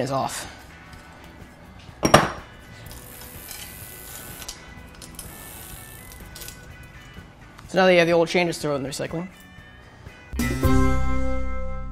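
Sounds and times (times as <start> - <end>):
bicycle chain rattling: 2.6 - 7.3.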